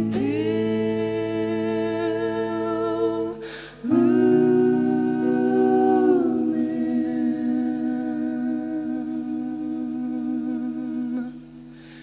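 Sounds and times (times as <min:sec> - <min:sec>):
song with wordless vocal notes: 0:00.0 - 0:12.0.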